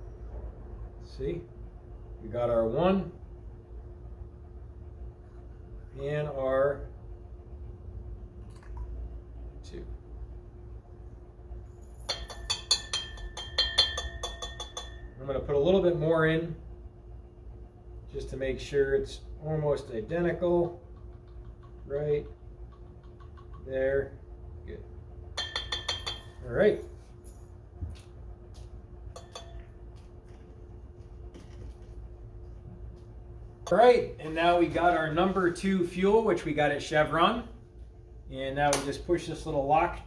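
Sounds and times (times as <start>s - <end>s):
steady low hum: 0.0s - 40.0s
metal spoon clinking on glass: 12.0s - 15.2s, 25.4s - 26.4s, 29.2s - 29.7s
glass beaker ringing: 12.0s - 15.4s, 25.4s - 26.4s, 29.2s - 29.7s.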